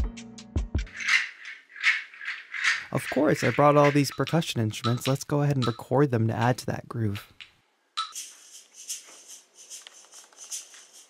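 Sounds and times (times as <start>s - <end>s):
shaker hissing in rhythm: 8.1s - 11.0s.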